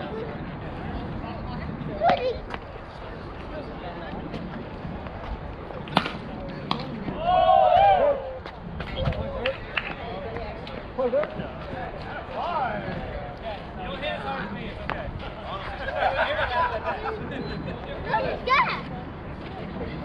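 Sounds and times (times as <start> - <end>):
chatter: 0.0 - 20.0
players shouting: 7.1 - 8.4.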